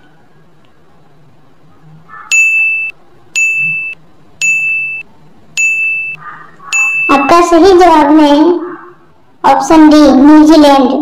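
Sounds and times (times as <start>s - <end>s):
short electronic beeps: 2.3s - 7.5s.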